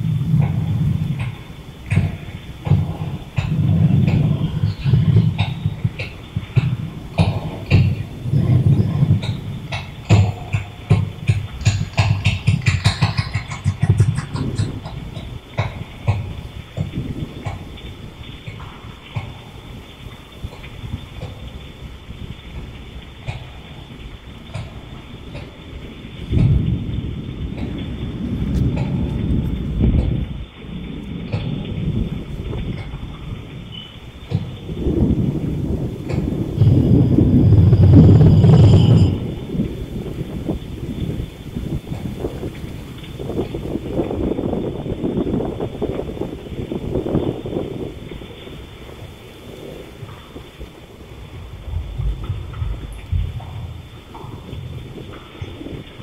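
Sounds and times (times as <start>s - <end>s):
deep rumbling: 0.0s - 56.0s
clicks and crackles: 0.2s - 39.2s.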